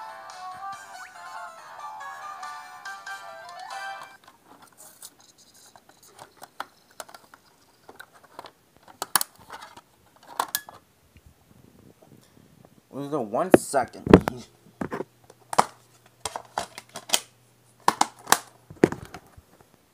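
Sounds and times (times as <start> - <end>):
menu music from tv: 0.0 - 4.2.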